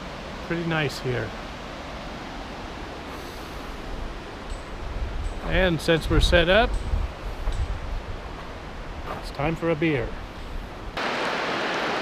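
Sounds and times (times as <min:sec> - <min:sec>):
river rushing: 0:00.0 - 0:06.0, 0:10.8 - 0:12.0.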